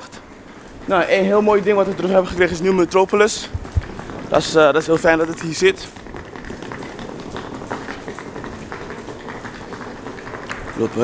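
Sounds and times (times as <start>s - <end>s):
faint footsteps: 0.0s - 11.0s
street background noise: 0.0s - 11.0s.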